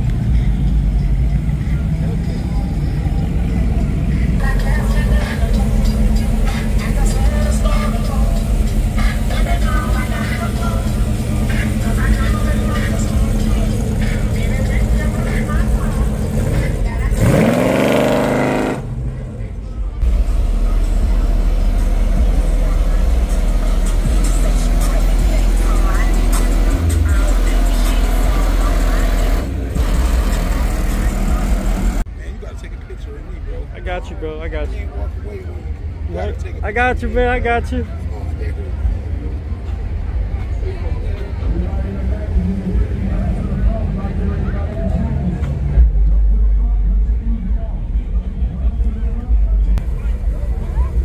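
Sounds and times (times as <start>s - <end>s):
car engines rumbling: 0.0s - 51.0s
crowd voices: 0.0s - 51.0s
music: 4.3s - 17.2s, 20.0s - 31.6s
engine revving: 4.3s - 19.3s, 20.0s - 32.1s.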